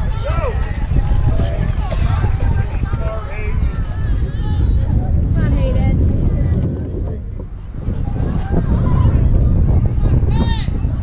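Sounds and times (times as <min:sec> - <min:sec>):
spectators' voices: 0:00.0 - 0:11.0
wind rumble on microphone: 0:00.0 - 0:11.0.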